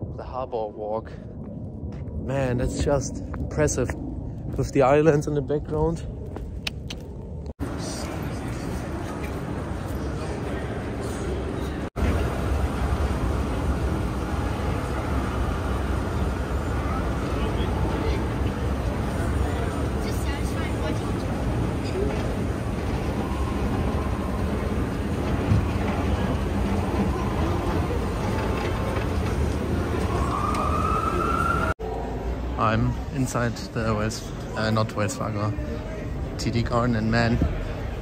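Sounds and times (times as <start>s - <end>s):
escalator low rumble: 0.0s - 33.0s
people talking: 0.1s - 1.2s, 2.2s - 4.0s, 14.4s - 30.7s
crowded lobby din: 7.7s - 38.0s.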